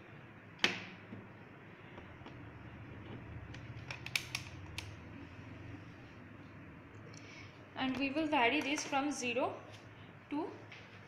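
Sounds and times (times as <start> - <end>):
plastic test leads clicking: 3.5 - 5.0.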